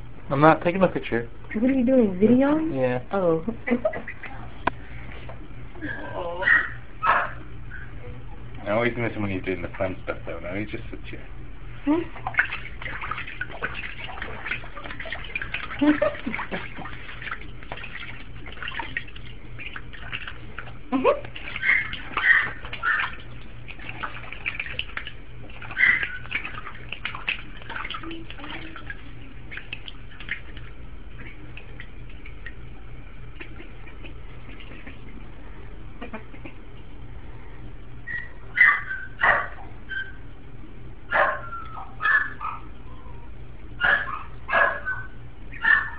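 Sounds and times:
puppy yapping: 6.4 - 7.9, 21.1 - 23.2, 25.6 - 26.5, 38.1 - 40.2, 41.1 - 45.9.

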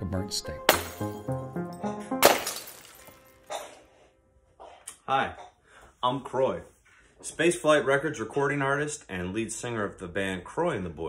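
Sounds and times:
background music: 0.0 - 4.5.

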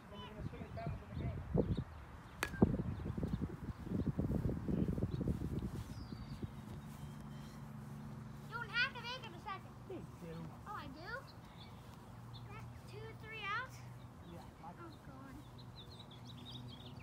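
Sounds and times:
plastic bat striking ball: 2.4 - 2.7.

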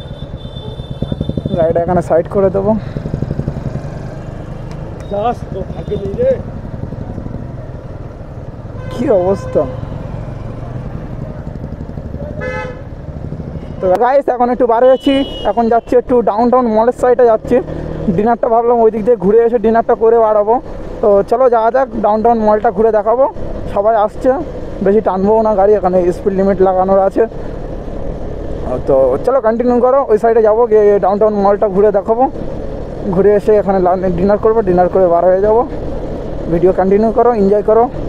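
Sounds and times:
motorcycle rumble: 0.0 - 38.0
person speaking: 8.8 - 9.9.

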